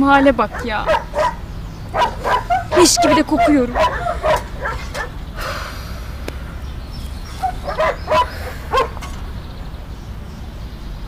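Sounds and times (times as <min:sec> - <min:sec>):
dog yipping: 0:00.4 - 0:05.2, 0:07.3 - 0:09.0.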